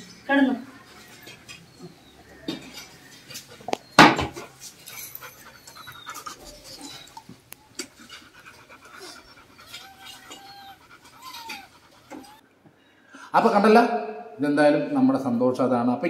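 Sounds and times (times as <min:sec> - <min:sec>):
puppies whining squeaks: 0:00.7 - 0:12.4
dog panting softly: 0:04.5 - 0:12.4.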